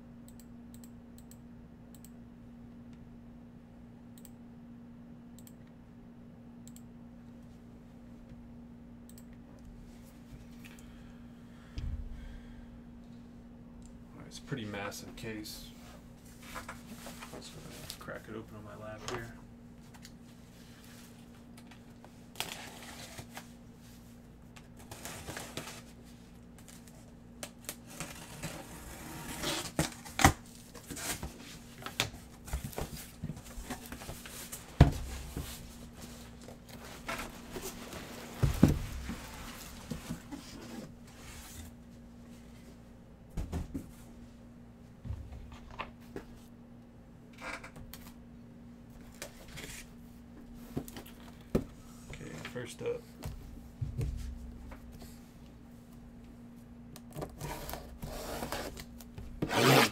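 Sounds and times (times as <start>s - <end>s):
steady low hum: 0.0s - 59.9s
cardboard scraping and tearing: 27.8s - 31.4s, 59.4s - 59.9s.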